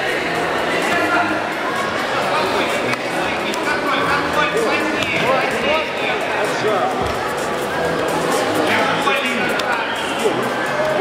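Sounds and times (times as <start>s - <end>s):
background music: 0.0s - 11.0s
crowd voices talking and calling: 0.0s - 11.0s.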